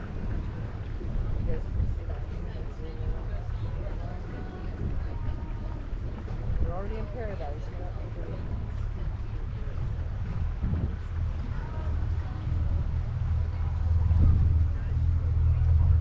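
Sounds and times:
motorboat engine rumble: 0.0 - 16.0
wind buffeting microphone: 0.0 - 16.0.

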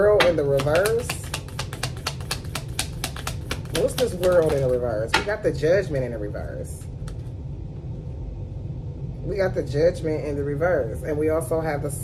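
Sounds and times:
cards being shuffled: 0.5 - 4.8.

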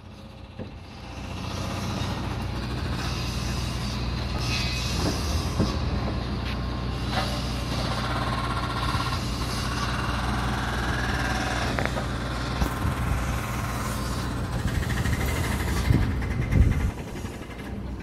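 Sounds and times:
diesel engine drone: 0.0 - 18.0
high-pitched machine whine: 0.0 - 18.0.

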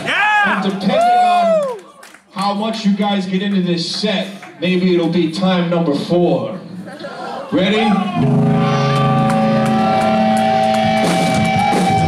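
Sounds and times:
electric guitar chord ringing: 8.2 - 12.0.

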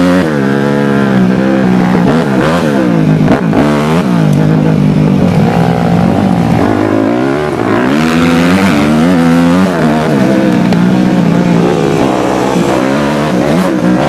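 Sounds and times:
dirt bike engine revving: 0.0 - 14.0.

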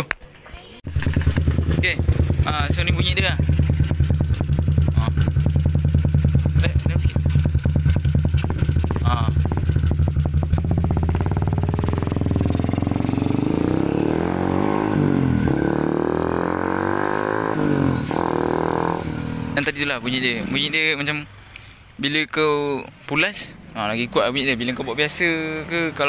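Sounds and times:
motorcycle engine idling and revving: 0.8 - 21.4.

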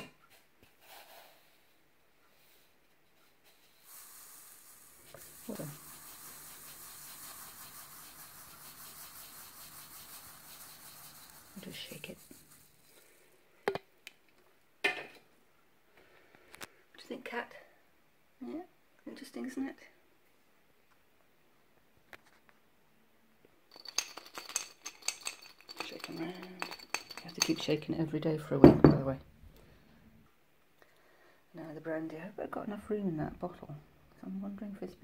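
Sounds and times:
sugar trickling through funnel: 3.2 - 13.5, 23.7 - 28.0
frozen fruit rattling in glass bottle: 3.8 - 13.1, 23.7 - 27.8.

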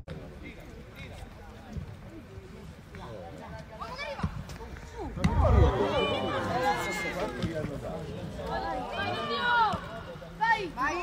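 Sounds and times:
players shouting: 3.8 - 11.0.

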